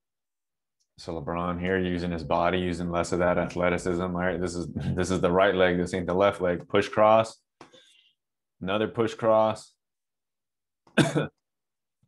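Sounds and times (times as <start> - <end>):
man coughing: 10.9 - 11.4.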